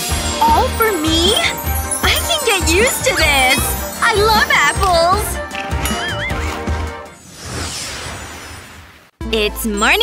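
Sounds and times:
background music: 0:00.0 - 0:07.2, 0:09.2 - 0:10.0
whoosh: 0:07.1 - 0:09.2.

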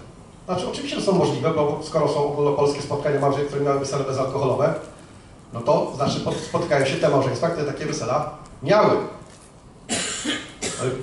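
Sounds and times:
person coughing: 0:09.9 - 0:11.0.

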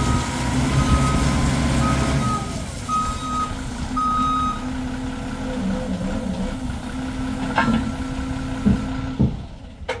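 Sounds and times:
diesel engine idling: 0:00.0 - 0:09.9.

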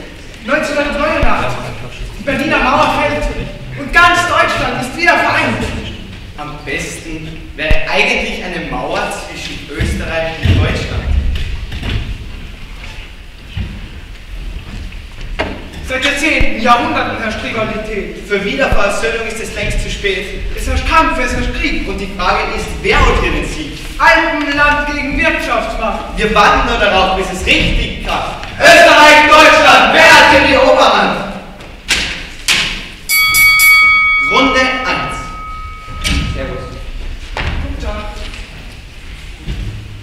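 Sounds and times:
low steady hall rumble: 0:00.0 - 0:40.0
footsteps on wooden stage floor: 0:09.7 - 0:15.9, 0:36.3 - 0:40.0
footfalls on wooden stage floor: 0:37.0 - 0:40.0.

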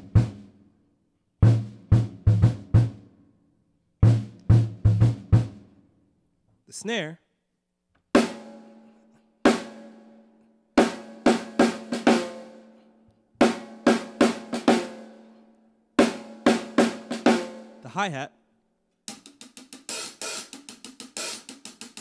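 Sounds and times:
snare drum groove: 0:00.0 - 0:00.5, 0:01.4 - 0:03.0, 0:04.0 - 0:05.6, 0:08.2 - 0:08.9, 0:09.5 - 0:10.0, 0:10.8 - 0:12.7, 0:13.4 - 0:15.2, 0:16.0 - 0:17.8, 0:19.1 - 0:22.0.

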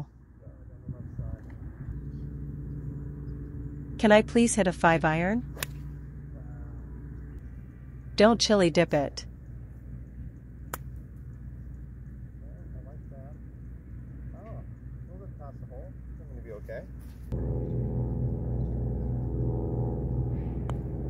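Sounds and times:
steady multi-pitched hum: 0:00.0 - 0:21.0
faint wavering calls: 0:05.5 - 0:07.6.

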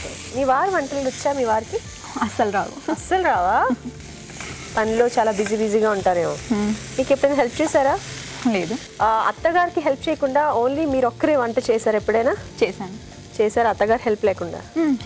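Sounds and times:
vegetables sizzling in oil: 0:00.0 - 0:15.0
women talking and laughing: 0:02.0 - 0:04.0.

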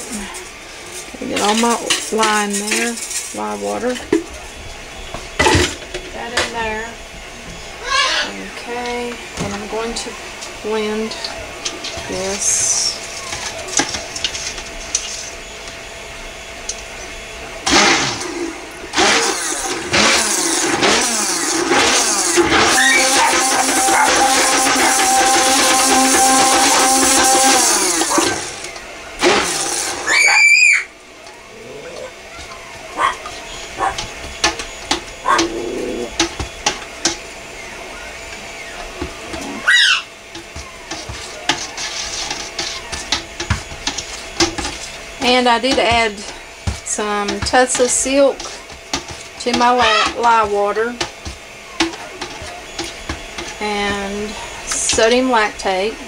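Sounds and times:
stick blender motor running: 0:04.8 - 0:56.0
macaw squawking: 0:07.8 - 0:08.3, 0:30.1 - 0:34.0, 0:39.4 - 0:40.1, 0:49.6 - 0:50.4.

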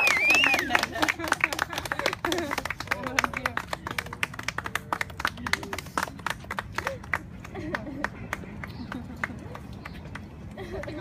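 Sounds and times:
people clapping: 0:00.0 - 0:11.0.

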